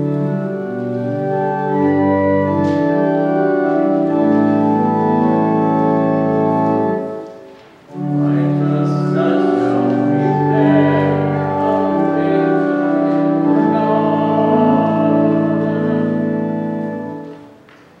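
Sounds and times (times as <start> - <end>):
organ playing sustained chords: 0.0 - 17.6.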